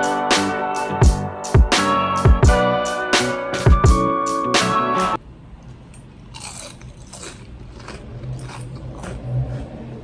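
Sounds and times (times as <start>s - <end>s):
crunchy chewing: 5.9s - 10.0s.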